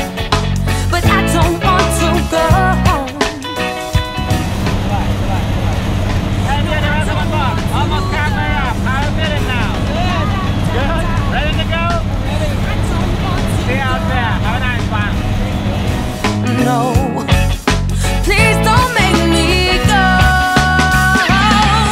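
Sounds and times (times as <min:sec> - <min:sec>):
voices talking: 0:04.2 - 0:17.4
plane engine and propeller drone: 0:04.4 - 0:16.2.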